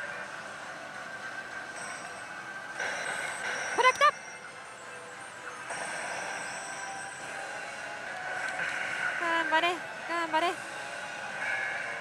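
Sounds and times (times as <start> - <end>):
slot machine noise: 1.3 - 12.0
slot machine sound effect: 1.7 - 4.6, 5.2 - 10.6.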